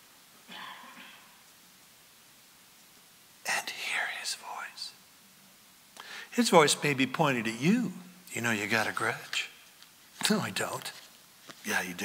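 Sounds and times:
man whispering: 3.4 - 5.0, 7.6 - 9.5, 10.2 - 12.0.

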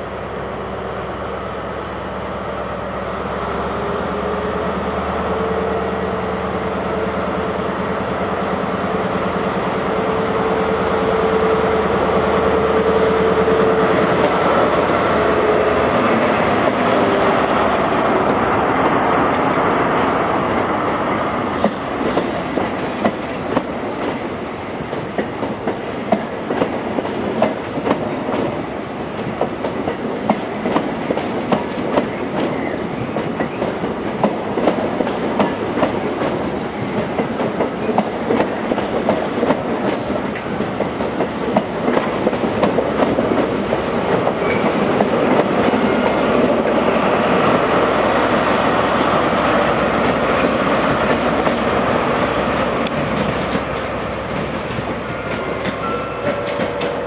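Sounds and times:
diesel locomotive approaching: 0.0 - 57.0
train rumble: 0.0 - 57.0
train wheels clicking over rail joints: 15.9 - 47.8, 49.9 - 57.0.

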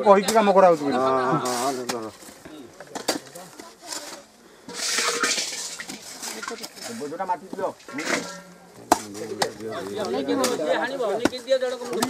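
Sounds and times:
soil scraping: 0.6 - 12.0.

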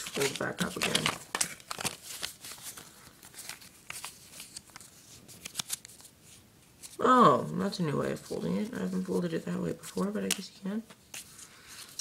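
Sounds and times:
paper rustling and crinkling: 0.0 - 7.0, 8.1 - 12.0.

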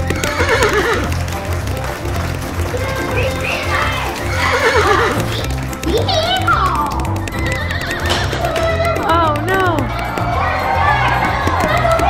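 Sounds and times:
horse whinnies: 0.0 - 1.2, 3.3 - 5.6, 7.2 - 8.7
background music with steady beat: 0.0 - 12.0.

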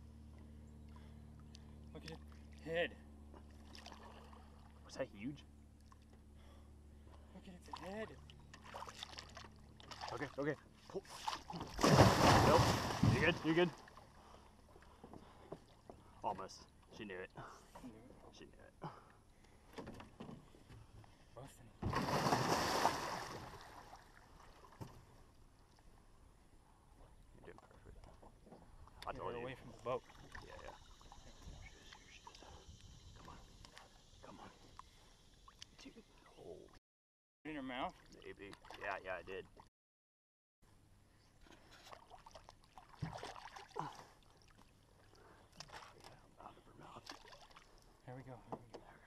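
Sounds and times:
water splashing and dripping: 11.1 - 14.0, 37.9 - 38.9, 41.9 - 44.7
fish splashing at water surface: 11.2 - 13.9, 21.9 - 24.1.

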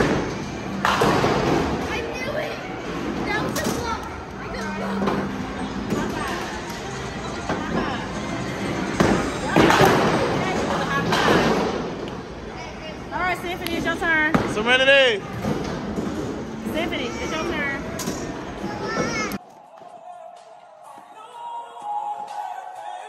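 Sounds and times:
background chatter: 0.0 - 21.2.

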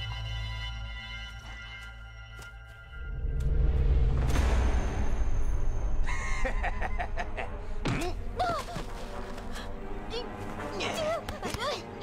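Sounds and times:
low rumble: 3.0 - 7.8.

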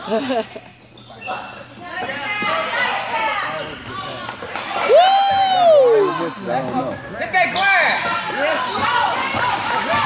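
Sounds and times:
spectators calling and chattering: 0.8 - 10.0.

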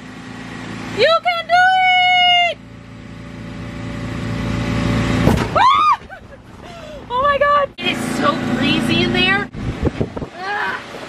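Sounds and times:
inflation blower humming: 0.0 - 11.0
high-pitched held cries: 5.6 - 6.2.

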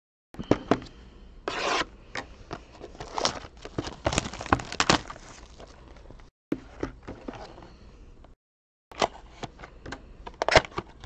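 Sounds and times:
plastic wrap tearing and crinkling: 2.9 - 6.1.

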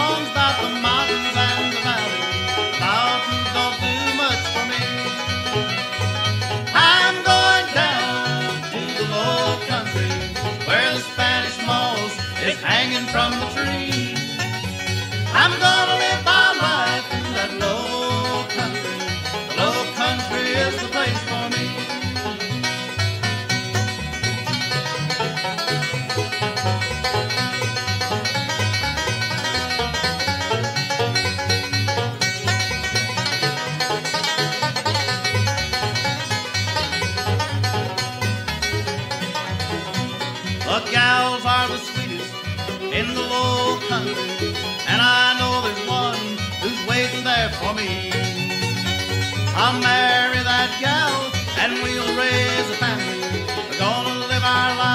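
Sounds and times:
banjo: 0.0 - 54.9
bluegrass band playing: 0.0 - 54.9.

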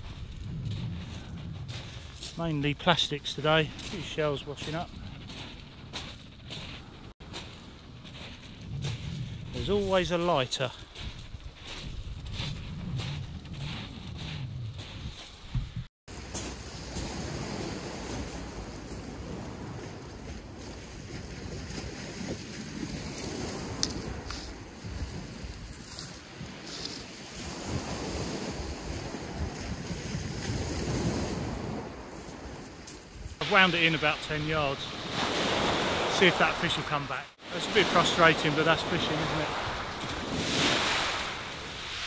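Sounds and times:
waves washing on shingle: 0.0 - 14.2, 33.4 - 42.0
wind buffeting microphone: 0.0 - 15.9, 16.7 - 33.4
footsteps crunching on pebbles: 0.0 - 18.2.

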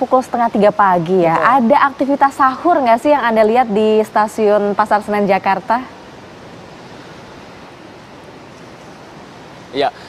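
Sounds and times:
hiss-like background noise: 0.0 - 10.0.

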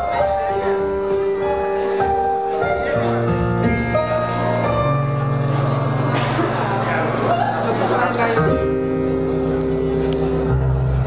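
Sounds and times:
electronic keyboard sustained chord: 0.0 - 11.0.

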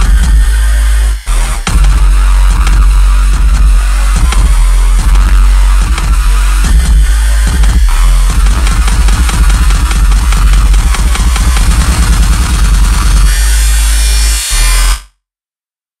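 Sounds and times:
drum and bass track: 0.0 - 15.0.

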